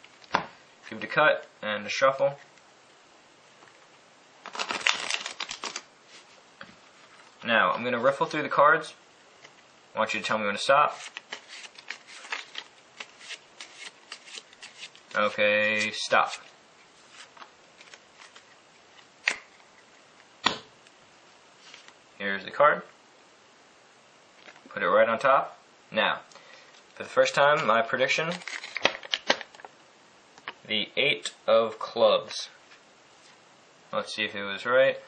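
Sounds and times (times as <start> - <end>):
playing cards being shuffled: 4.4 - 8.3, 10.7 - 20.6.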